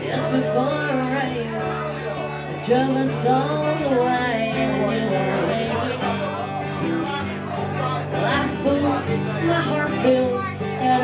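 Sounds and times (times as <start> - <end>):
woman singing: 0.0 - 6.5, 8.2 - 11.0
acoustic guitar chords: 0.0 - 11.0.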